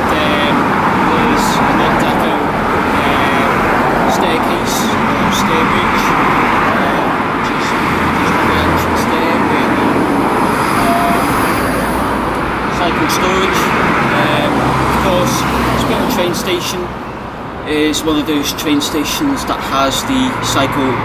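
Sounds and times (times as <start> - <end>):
passing cars: 0.0 - 21.0.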